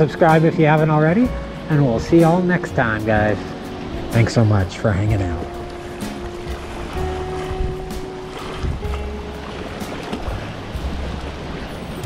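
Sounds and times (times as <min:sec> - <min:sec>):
background music held notes: 0:00.0 - 0:12.0
water lapping at shore: 0:00.0 - 0:12.0
wind buffeting microphone: 0:01.2 - 0:12.0.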